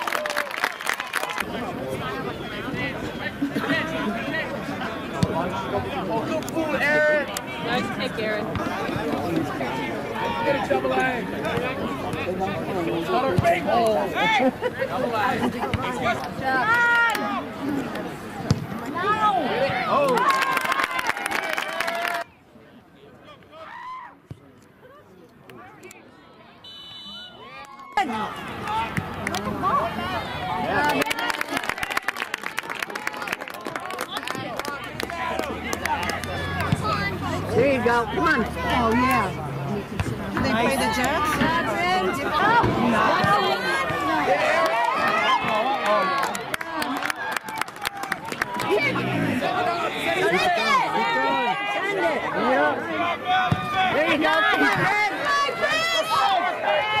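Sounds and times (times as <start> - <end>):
players and spectators calling out: 0.0 - 57.0.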